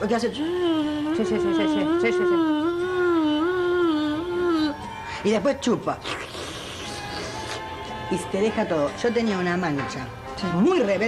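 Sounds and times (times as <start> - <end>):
person imitating suction whoosh: 6.0 - 7.7.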